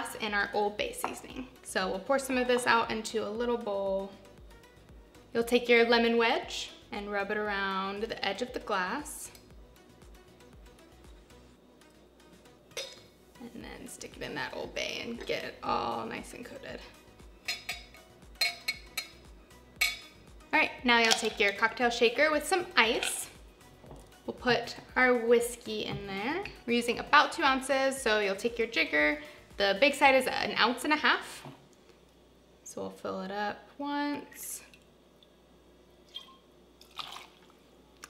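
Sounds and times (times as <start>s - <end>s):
glass clinking against ceramic bowl: 12.8s - 13.1s, 17.4s - 19.2s, 19.8s - 20.1s
liquid trickling into metal cup: 36.1s - 37.5s
liquid splashing: 36.1s - 37.6s.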